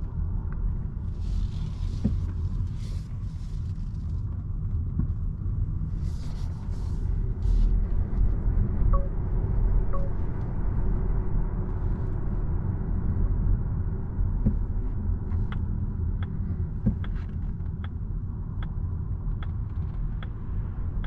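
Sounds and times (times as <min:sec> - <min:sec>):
road and tyre rumble in car: 0:00.0 - 0:21.0.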